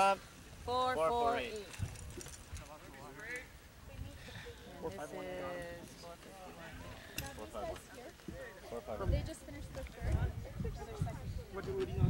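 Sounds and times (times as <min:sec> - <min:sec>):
distant spectators chattering: 0:00.0 - 0:12.0.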